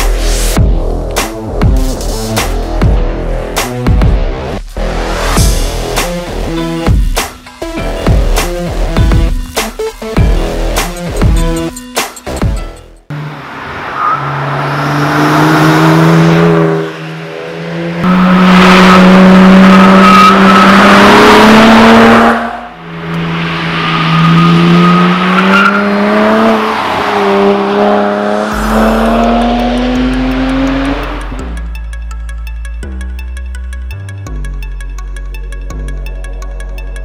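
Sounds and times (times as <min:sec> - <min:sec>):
tyre and road noise: 0:00.0 - 0:37.0
car engine revving: 0:13.1 - 0:31.9.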